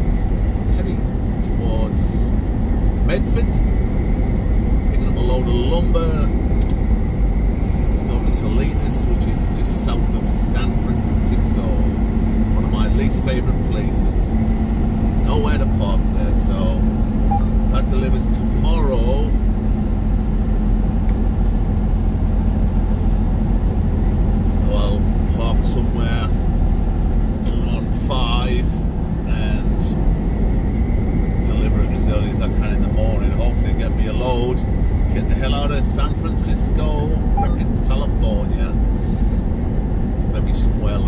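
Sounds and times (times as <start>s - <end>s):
steady hum: 0.0s - 41.0s
truck engine and road rumble: 0.0s - 41.0s.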